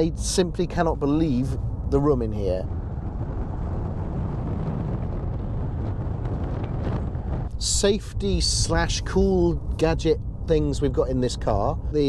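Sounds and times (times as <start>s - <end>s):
vehicle road and wind noise: 0.0s - 12.0s.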